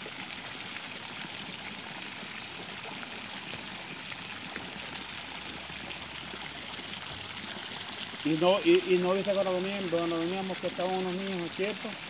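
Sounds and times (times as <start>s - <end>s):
water splashing into a pool: 0.0s - 12.0s.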